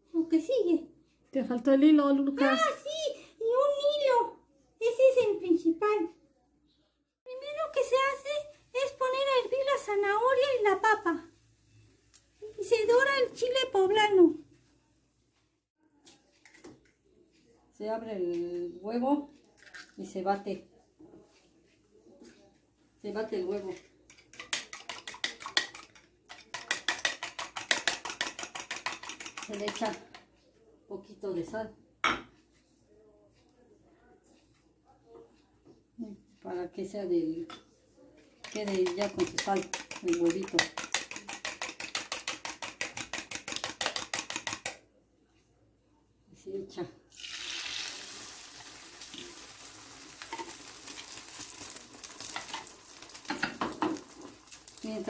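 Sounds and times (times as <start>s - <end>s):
fork whisking eggs in a bowl: 23.5s - 30.3s, 38.2s - 44.9s, 47.4s - 55.0s
egg sizzling in frying pan: 47.2s - 55.0s.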